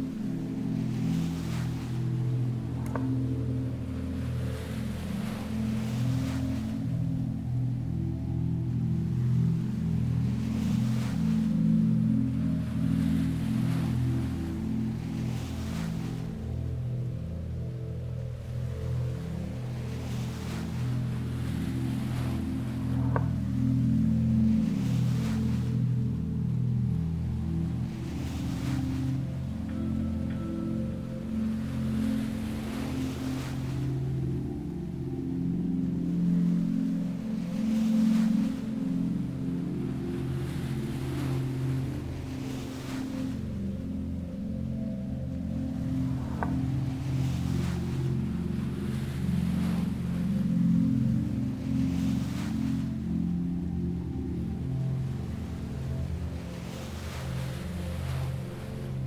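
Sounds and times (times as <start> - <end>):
low ambient drone: 0.0 - 59.0
ocean surf: 0.0 - 59.0.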